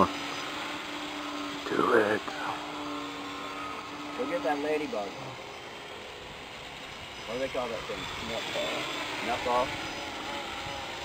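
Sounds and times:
drone propellers buzzing: 0.0 - 11.0.

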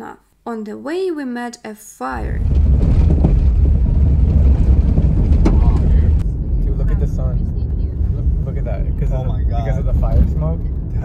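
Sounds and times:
car cabin low rumble: 2.2 - 11.0.

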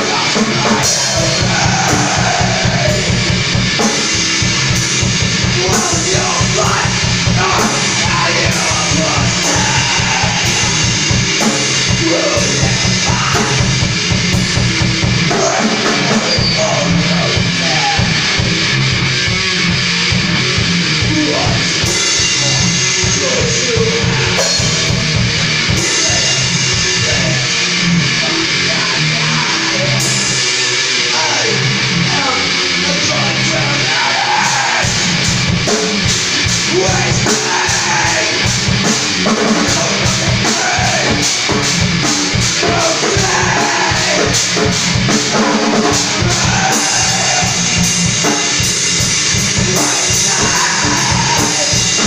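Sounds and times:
rapid kick drum beats: 0.0 - 27.5, 34.8 - 52.0
live rock music: 0.0 - 52.0.

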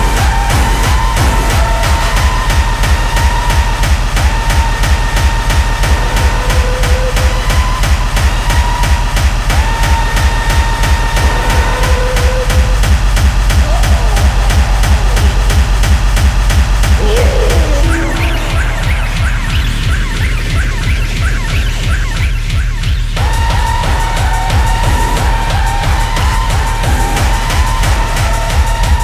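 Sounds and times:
driving kick drum: 0.0 - 29.0
held synth tones: 11.6 - 21.9.

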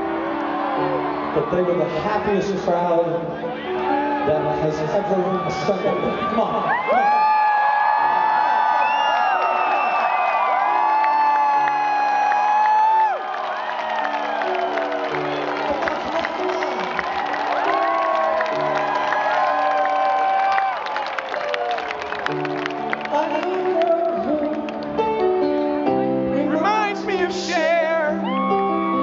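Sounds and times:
keyboard chords: 0.0 - 7.0, 10.8 - 29.0
crowd cheering and singing along: 0.0 - 29.0.

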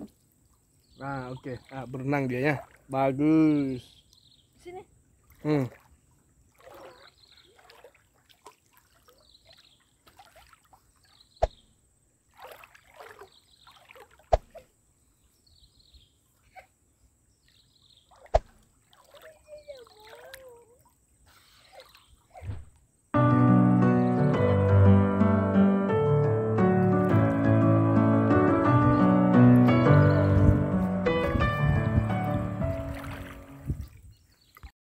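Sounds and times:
lake water splashing: 0.0 - 14.9, 16.1 - 34.7.

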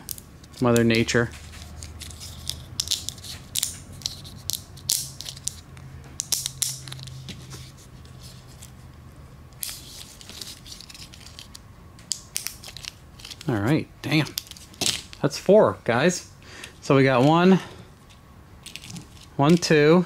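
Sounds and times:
low steady hum: 0.0 - 20.0
plastic connectors clicking: 1.7 - 7.2, 9.5 - 15.2.

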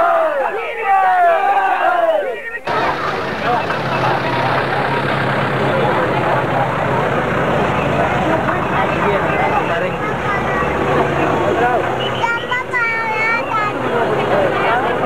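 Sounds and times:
crowd of men shouting and cheering: 0.0 - 15.0
dense crowd babble: 0.0 - 15.0.

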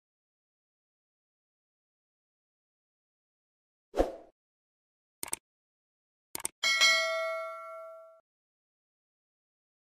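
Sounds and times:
bright bell chime ding: 6.6 - 8.2.

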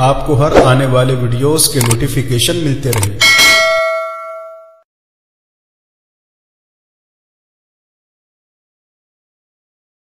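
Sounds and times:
bell ding: 3.2 - 4.9.

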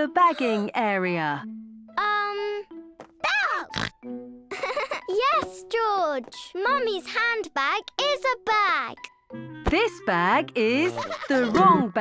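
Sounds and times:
light background music: 0.0 - 12.0
cartoon character voices: 3.2 - 3.8.

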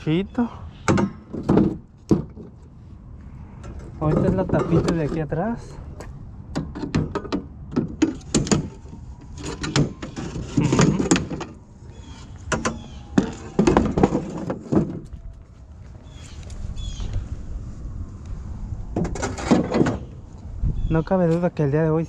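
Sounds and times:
wooden cart knocking and rattling: 0.9 - 2.6, 6.6 - 11.6, 12.5 - 15.4, 19.0 - 20.1.

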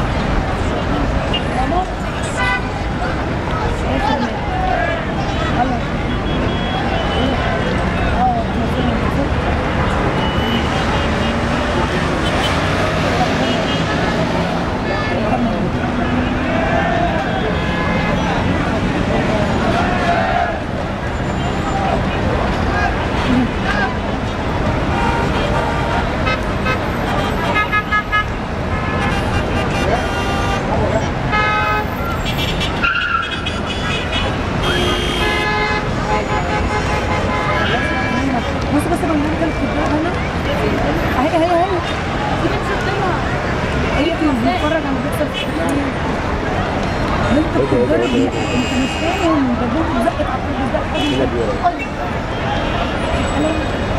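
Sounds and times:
engines din: 0.0 - 27.6
people's voices: 0.0 - 53.9
road traffic: 0.0 - 53.9
car horns honking: 6.0 - 8.0, 10.0 - 18.5, 24.9 - 38.5, 47.4 - 53.8.

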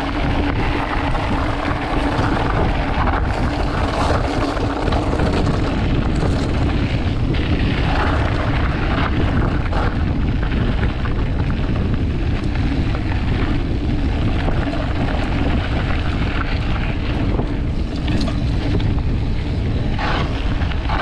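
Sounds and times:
bike tyres on gravel: 0.0 - 21.0
wind rushing over microphone: 0.0 - 21.0.

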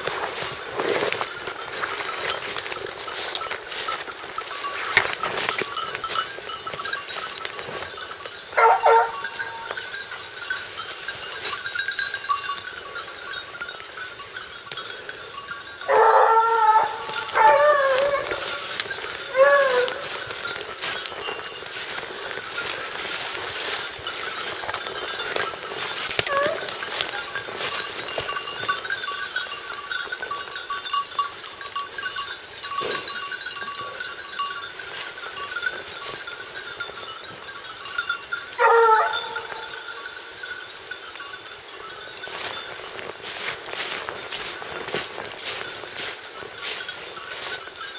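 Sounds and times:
faint steady ringing: 0.0 - 47.9
hounds baying: 8.5 - 9.9, 15.0 - 23.8, 24.4 - 28.9, 38.5 - 40.0.

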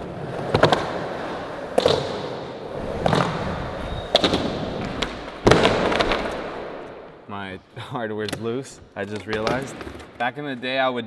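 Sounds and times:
skateboard wheels rolling on concrete: 0.0 - 7.1
skateboard clacks and thuds: 4.1 - 6.5.

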